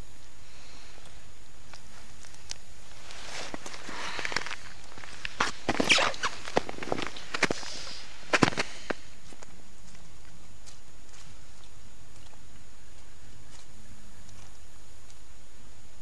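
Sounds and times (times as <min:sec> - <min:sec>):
snow and ice crunching: 0:01.6 - 0:15.2
jacket rustling: 0:01.9 - 0:08.9.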